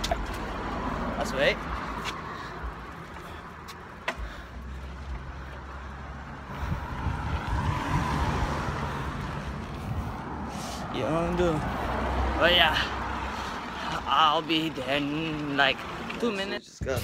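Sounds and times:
bicycle rolling noise: 0.0s - 16.6s
wind rumbling on microphone: 6.4s - 10.6s.

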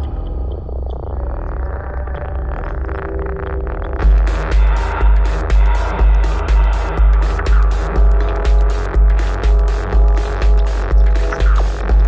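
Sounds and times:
rolling synth bassline: 2.7s - 12.0s.

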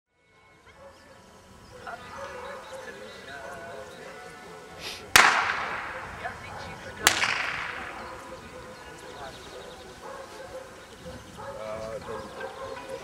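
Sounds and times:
gunshots with echo: 5.1s - 8.6s.

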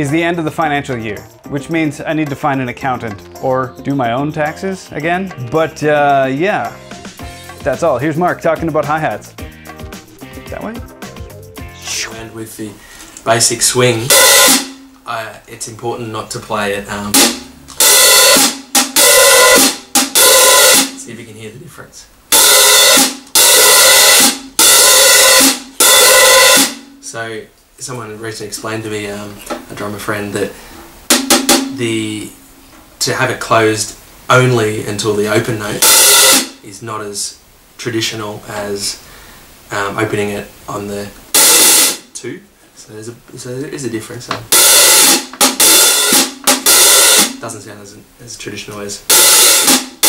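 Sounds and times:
hi-hat cymbals played hard: 0.0s - 14.9s, 17.0s - 21.1s, 22.3s - 27.3s, 30.4s - 33.2s, 35.3s - 36.6s, 41.3s - 42.2s, 44.5s - 47.6s, 49.1s - 50.0s.

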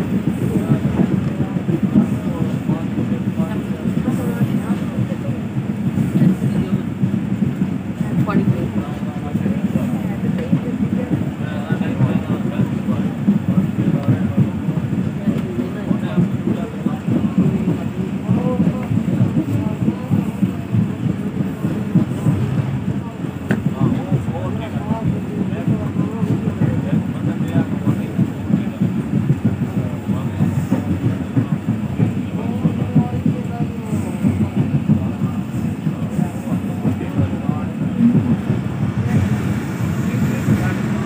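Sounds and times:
faint voices: 0.0s - 41.0s
train rumble inside carriage: 0.0s - 41.0s.

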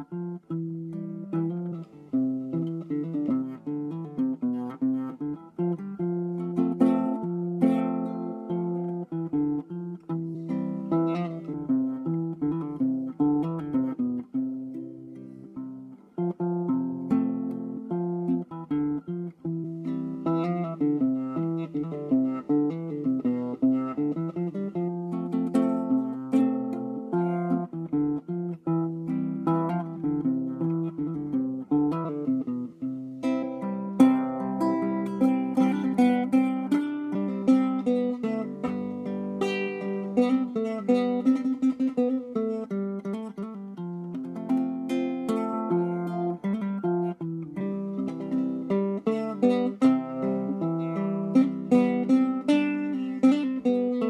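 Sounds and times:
classical guitar fingerstyle: 0.0s - 54.0s.

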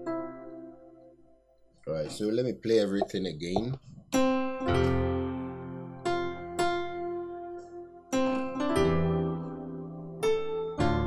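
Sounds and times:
piano-tone keyboard chords: 0.0s - 1.4s, 4.2s - 11.0s.

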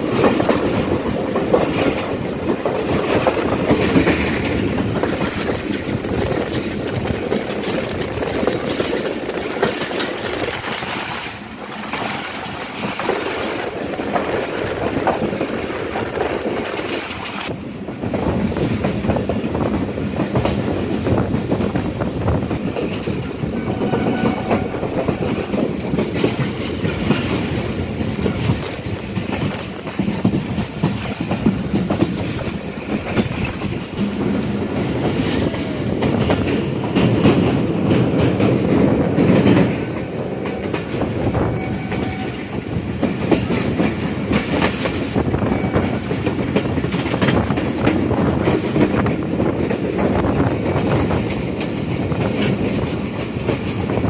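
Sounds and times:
train wheels clacking on rails: 0.0s - 54.0s.

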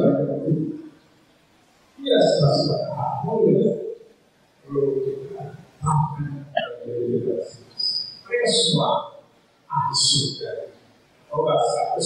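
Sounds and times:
man speaking over a microphone: 0.0s - 0.9s, 2.0s - 4.0s, 4.6s - 12.0s.

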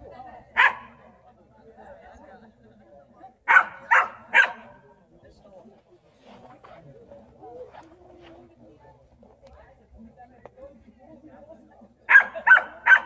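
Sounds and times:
dog barking: 0.6s - 1.0s, 3.5s - 4.8s, 12.1s - 13.0s.

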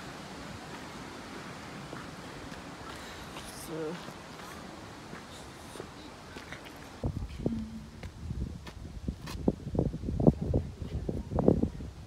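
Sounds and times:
wind buffeting microphone: 6.9s - 12.0s.

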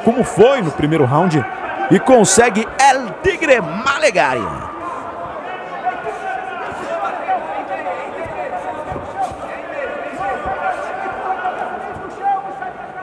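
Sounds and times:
crowd shouting and chattering: 0.0s - 13.0s
dull thuds: 8.1s - 9.5s.

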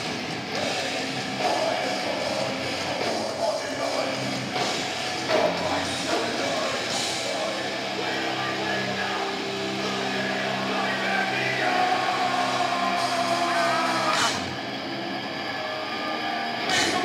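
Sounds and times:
held guitar chords: 0.0s - 17.0s
live metal band playing: 0.0s - 17.0s.

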